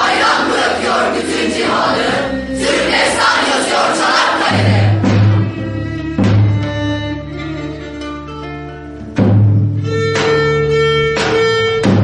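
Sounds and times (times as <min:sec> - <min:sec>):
choir singing: 0:00.0 - 0:05.6.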